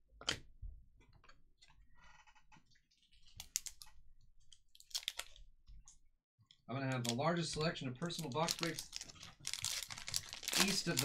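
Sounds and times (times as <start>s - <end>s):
card packs rustling: 6.9s - 11.0s.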